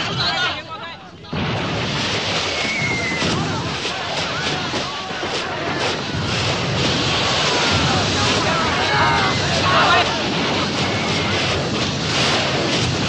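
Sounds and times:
fireworks crackling and hissing: 0:00.0 - 0:13.0
sharp pops: 0:01.3 - 0:13.0
men shouting and screaming: 0:07.3 - 0:11.1.

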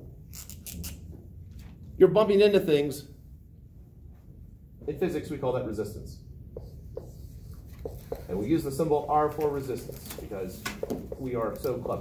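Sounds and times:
marker writing on whiteboard: 0:06.5 - 0:11.8.

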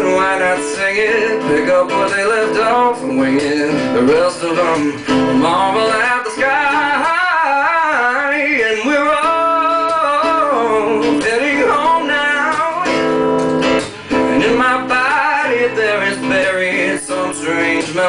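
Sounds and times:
man singing: 0:00.0 - 0:13.2, 0:13.8 - 0:18.0
strummed guitar: 0:00.0 - 0:18.0.

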